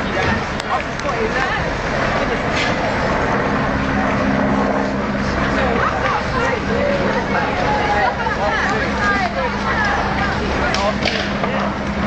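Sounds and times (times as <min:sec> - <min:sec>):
rushing street noise: 0:00.0 - 0:12.0
vehicle engine humming: 0:00.0 - 0:12.0.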